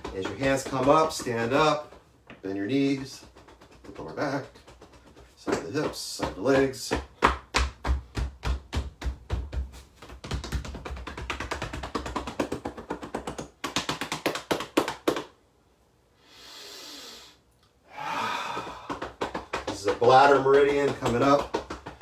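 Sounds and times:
hands slapping body over clothing: 0:00.0 - 0:15.4, 0:18.5 - 0:22.0.

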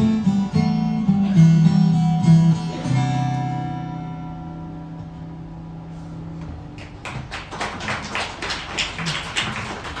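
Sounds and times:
acoustic guitar chord ringing: 0:00.0 - 0:06.7
audience clapping: 0:06.7 - 0:10.0.

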